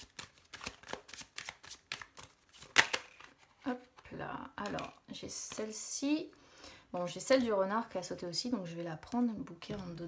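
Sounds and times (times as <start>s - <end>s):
cards being shuffled: 0.0s - 4.0s.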